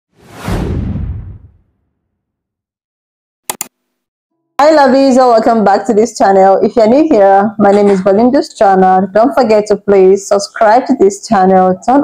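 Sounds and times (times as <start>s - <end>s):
whoosh sound effect: 0.1s - 1.7s
deep rumble: 0.2s - 1.7s.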